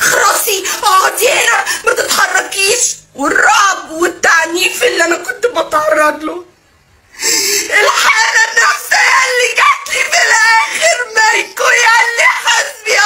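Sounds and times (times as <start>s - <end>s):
woman sobbing and wailing: 7.1s - 13.0s.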